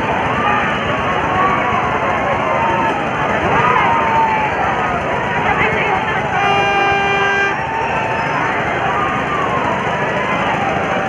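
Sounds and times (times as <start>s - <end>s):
babble of busy crowd: 0.0s - 11.0s
horn toot: 6.3s - 7.7s.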